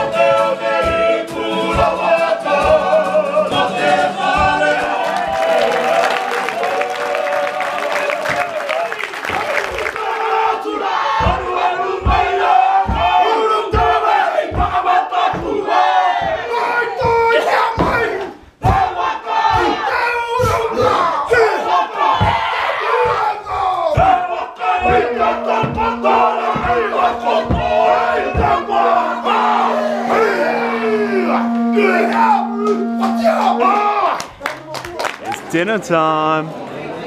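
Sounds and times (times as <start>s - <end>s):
men chanting in unison: 0.0s - 8.0s, 9.7s - 31.4s
feet stamping: 10.8s - 19.8s, 20.4s - 30.2s.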